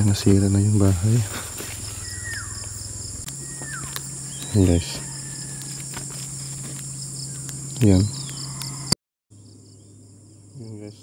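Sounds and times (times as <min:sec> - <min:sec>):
high-pitched insect chorus: 0:00.0 - 0:11.0
low steady hum: 0:00.0 - 0:11.0.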